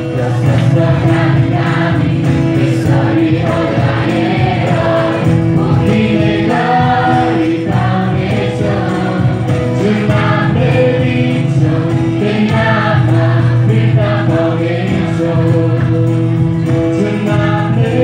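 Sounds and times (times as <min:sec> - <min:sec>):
acoustic guitar: 0:00.0 - 0:18.0
group of women singing: 0:00.0 - 0:18.0.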